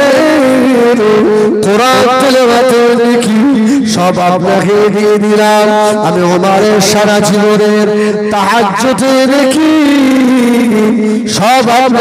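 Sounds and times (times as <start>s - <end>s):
man singing devotional line: 0.0s - 12.0s.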